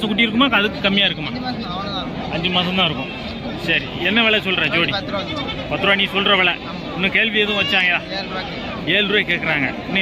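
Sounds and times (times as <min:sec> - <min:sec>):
young goat bleating: 0:05.0 - 0:05.8.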